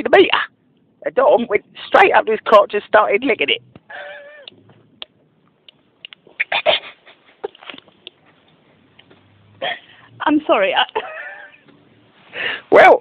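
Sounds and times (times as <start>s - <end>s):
stifled laughter over a telephone: 6.4s - 7.9s, 11.0s - 11.7s.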